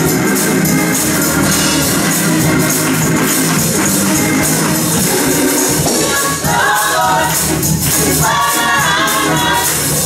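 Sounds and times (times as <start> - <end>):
gospel band with drums and keyboard: 0.0 - 10.0
hand-clapping: 1.8 - 5.3, 7.4 - 8.4.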